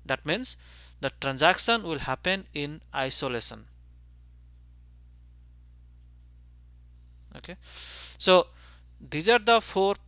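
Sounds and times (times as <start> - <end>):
low electrical hum: 0.0 - 10.0
stylus scratching on tablet: 3.8 - 7.0.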